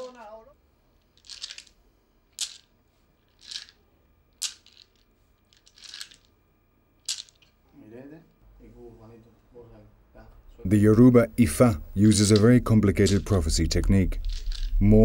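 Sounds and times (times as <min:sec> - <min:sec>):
seeds rattled between hands: 0:01.2 - 0:01.7, 0:03.3 - 0:03.8, 0:04.4 - 0:06.3, 0:14.1 - 0:15.0.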